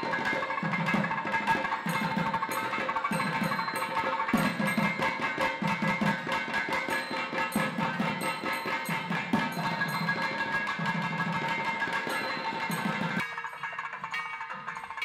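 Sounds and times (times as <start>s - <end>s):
barrel drums playing fast rhythm: 0.0s - 15.0s.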